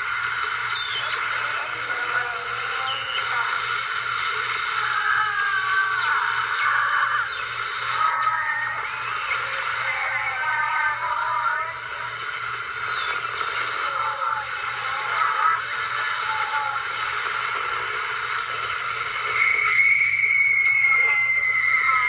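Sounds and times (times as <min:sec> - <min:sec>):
warbling synthesizer tones: 0:00.0 - 0:22.0.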